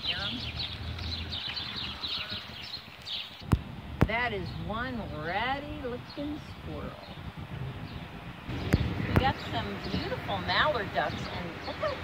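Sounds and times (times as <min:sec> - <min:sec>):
sparrows chirping: 0:00.0 - 0:12.0.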